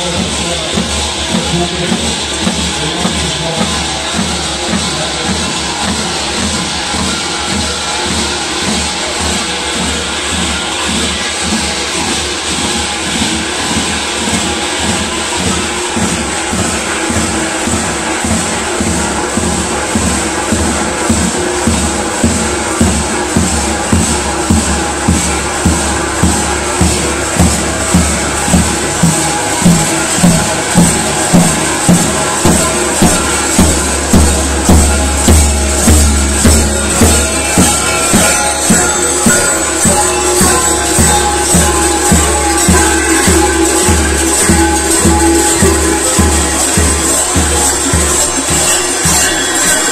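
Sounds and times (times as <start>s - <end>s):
jangling bells: 0.0s - 49.9s
large drum beating rhythm: 0.0s - 49.9s.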